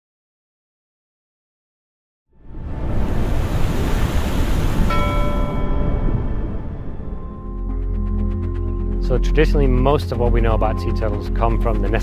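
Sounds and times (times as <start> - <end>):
rushing ocean water: 2.4 - 7.4
held musical tones: 4.9 - 12.0.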